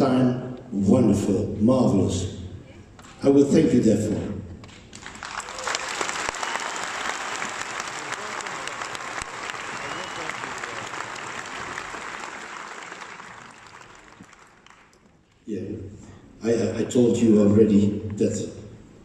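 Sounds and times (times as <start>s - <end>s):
audience applauding: 4.7s - 15.2s.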